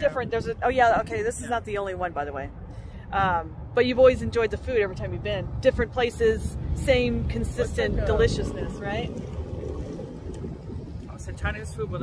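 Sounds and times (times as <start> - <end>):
wind buffeting microphone: 0.0 - 4.5, 5.8 - 12.0.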